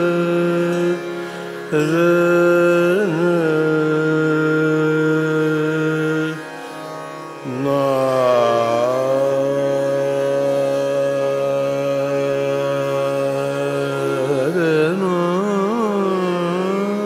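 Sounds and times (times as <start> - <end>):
man singing long sustained notes: 0.0 - 17.0
tanpura drone: 0.0 - 17.0.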